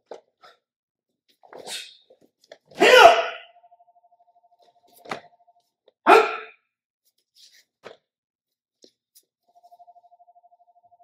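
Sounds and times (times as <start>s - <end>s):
person shouting sharply: 2.8s - 3.5s, 6.1s - 6.6s.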